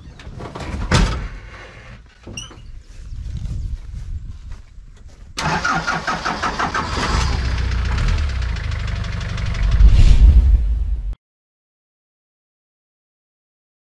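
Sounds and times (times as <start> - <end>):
truck engine cranking: 5.4 - 9.8
truck engine running: 5.4 - 10.7.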